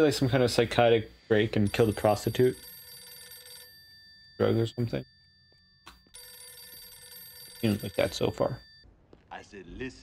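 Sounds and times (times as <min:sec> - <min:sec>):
rotary telephone ringing: 0:01.6 - 0:08.9.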